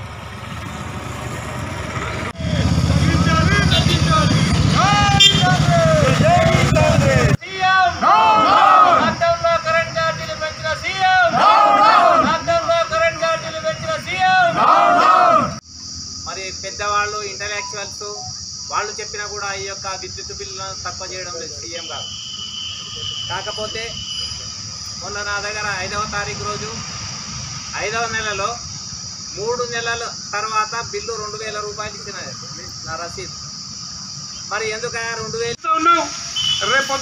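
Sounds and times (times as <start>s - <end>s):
motorcycle engines running: 0.0s - 7.4s
crickets droning: 0.1s - 37.0s
people calling out: 3.4s - 15.6s.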